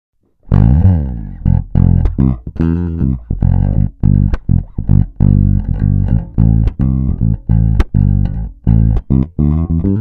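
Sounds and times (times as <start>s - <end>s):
electric bass fingerstyle notes: 0.2s - 10.0s.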